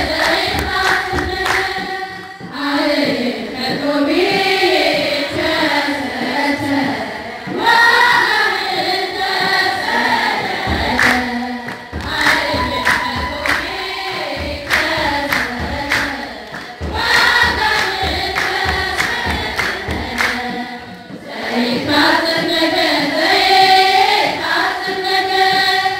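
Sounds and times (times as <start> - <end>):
low thumps: 0.0 - 5.6, 7.4 - 22.8
rhythmic hand clapping: 0.0 - 25.9
women singing a hymn: 0.0 - 25.9.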